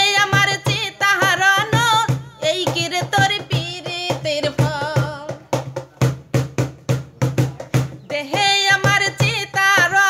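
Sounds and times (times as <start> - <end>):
person singing folk song: 0.0 - 5.6, 8.1 - 10.0
drum rhythm: 0.0 - 10.0.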